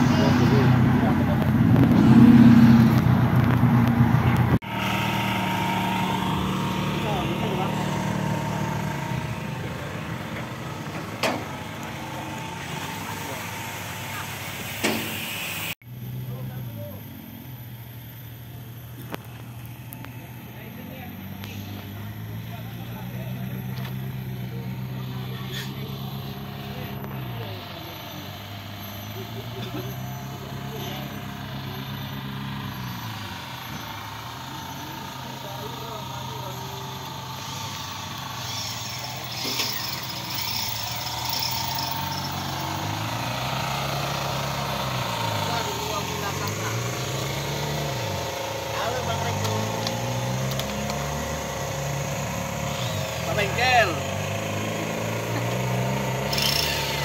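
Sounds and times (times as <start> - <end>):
engine running: 0.0 - 57.0
voices in background: 20.5 - 42.3.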